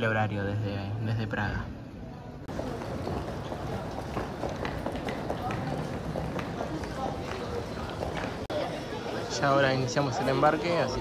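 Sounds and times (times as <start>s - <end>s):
indistinct chatter: 2.0s - 11.0s
footsteps on tiled floor: 2.5s - 8.9s.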